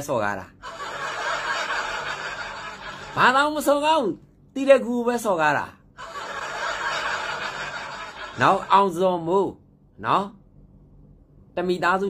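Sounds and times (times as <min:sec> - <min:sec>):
man laughing: 0:00.6 - 0:03.4, 0:06.0 - 0:08.9.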